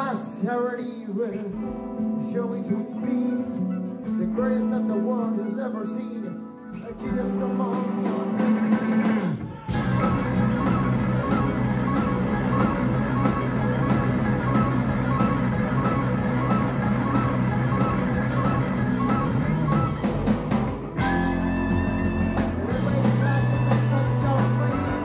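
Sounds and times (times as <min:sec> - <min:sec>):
electric guitars: 0:00.0 - 0:25.0
keyboard: 0:00.0 - 0:25.0
drum kit: 0:01.3 - 0:25.0
saxophone: 0:07.2 - 0:25.0.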